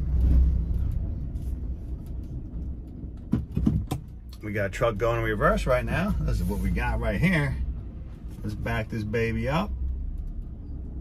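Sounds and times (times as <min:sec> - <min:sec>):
van engine and road noise: 0:00.0 - 0:11.0.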